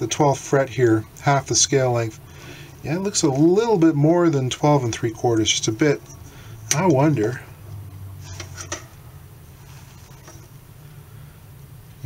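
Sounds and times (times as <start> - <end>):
electrical hum with buzz: 0.0 - 12.0.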